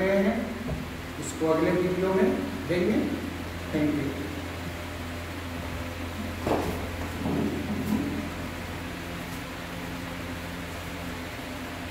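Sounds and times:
low room hum: 0:00.0 - 0:11.9
dull rumble of handling: 0:04.0 - 0:10.9.

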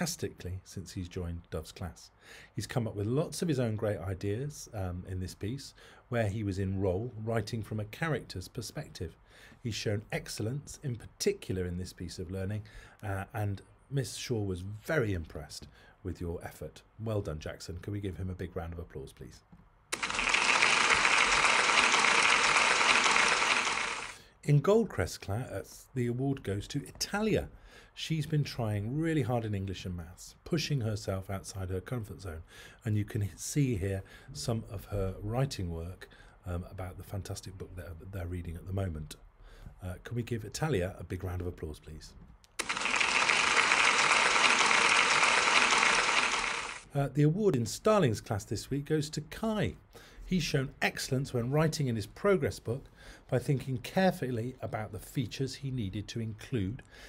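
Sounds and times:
crowd applause: 0:20.0 - 0:24.2, 0:42.6 - 0:46.8.

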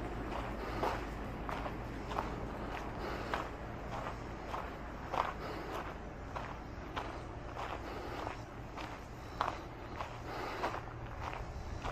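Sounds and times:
footsteps on gravel: 0:00.0 - 0:11.9.

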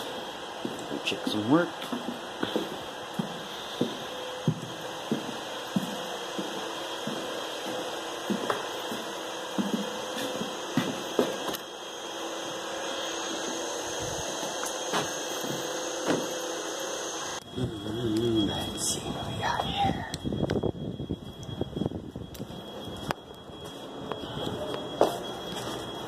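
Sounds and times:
steady hum: 0:00.0 - 0:26.0.

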